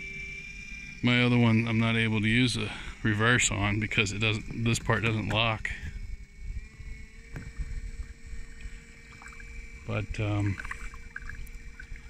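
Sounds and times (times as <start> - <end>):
electric motor whine: 0.0 - 12.0
water and wind wash: 6.1 - 12.0.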